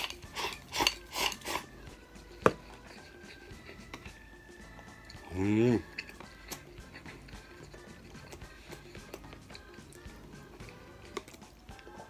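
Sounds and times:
chopsticks scraping rice bowl: 0.0 - 1.8, 2.4 - 4.2, 5.1 - 10.0.

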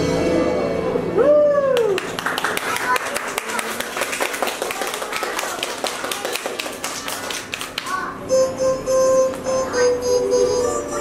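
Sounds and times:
young children chattering: 7.4 - 8.3.

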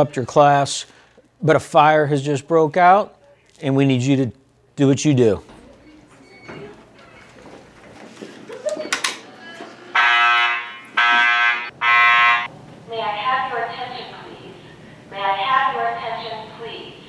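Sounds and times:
recorded voice announcement: 0.0 - 5.6, 11.9 - 17.0
fire alarm blasts: 9.9 - 12.5.

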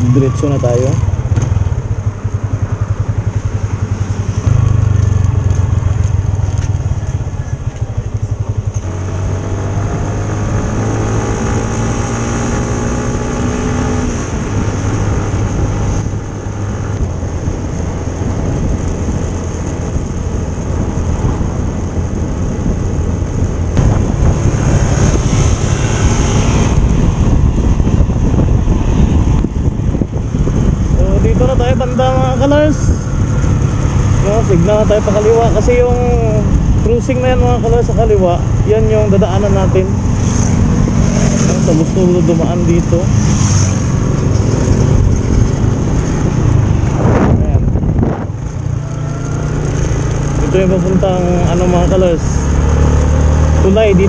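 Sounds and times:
wind and road noise: 0.0 - 54.0
motor scooter engine accelerating: 0.6 - 17.0, 32.2 - 54.0.

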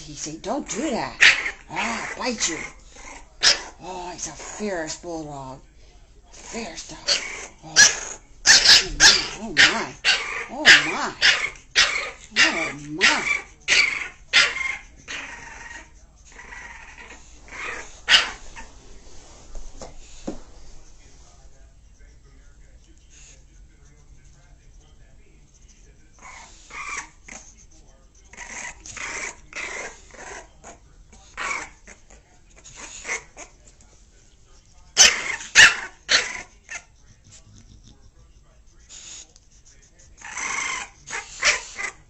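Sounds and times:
bulldog growling: 0.6 - 5.5, 6.4 - 18.7, 28.2 - 33.6, 34.9 - 38.4, 40.2 - 42.0
dog barking: 3.4 - 3.8, 7.1 - 15.5, 17.0 - 18.4, 35.0 - 36.9.

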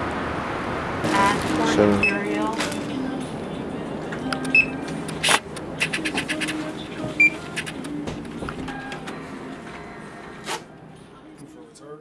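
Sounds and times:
background music: 1.0 - 12.0
loud electronic beep: 2.0 - 2.2.

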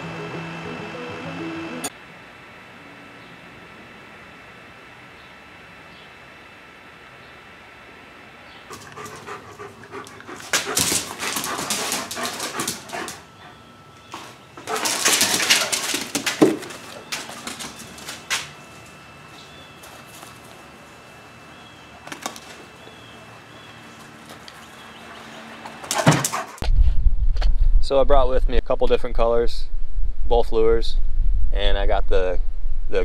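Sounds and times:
dog noisy bursts: 14.6 - 18.4, 25.0 - 26.6.

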